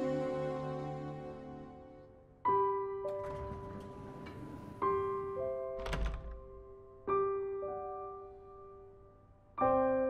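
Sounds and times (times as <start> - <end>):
slow soft piano music: 0.0 - 10.0
door opening thunk: 3.1 - 5.1, 5.7 - 6.7.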